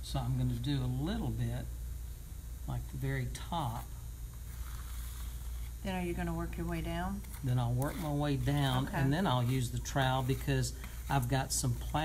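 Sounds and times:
steady low hum: 0.0s - 12.0s
person speaking: 5.8s - 12.0s.

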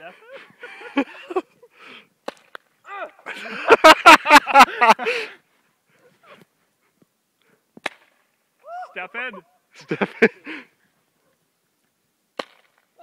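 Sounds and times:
man laughing hard: 0.6s - 1.6s, 3.2s - 5.4s, 9.8s - 10.6s
sharp crack: 2.2s - 3.2s, 7.8s - 8.3s, 12.3s - 12.9s.

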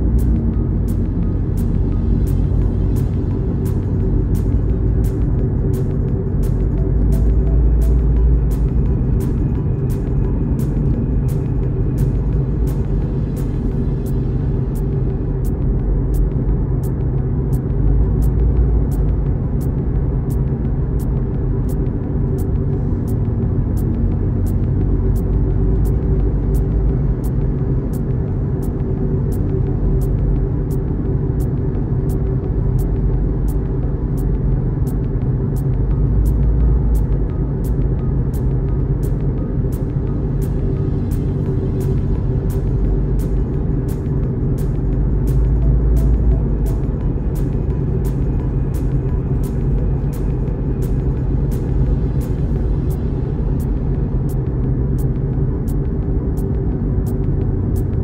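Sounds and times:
car engine and tyres rumbling: 0.0s - 58.0s
music with ticking beat: 0.0s - 58.0s.

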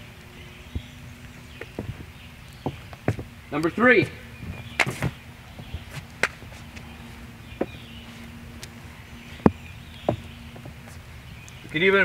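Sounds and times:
footsteps on wooden deck: 0.7s - 11.8s.

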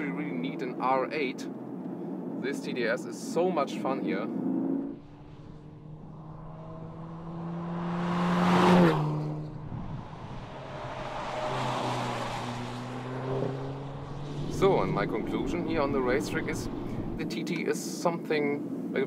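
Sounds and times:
car engine revving hard: 4.4s - 17.2s.

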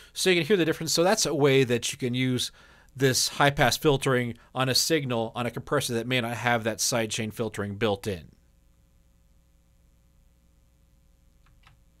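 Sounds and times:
low steady hum: 0.0s - 12.0s
faint clicks: 11.3s - 11.9s.

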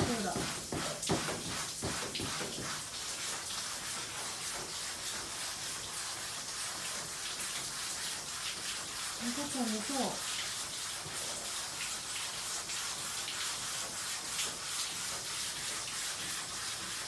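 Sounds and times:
brush scrubbing wet cloth: 0.0s - 17.0s
running and splashing water: 0.0s - 17.0s.

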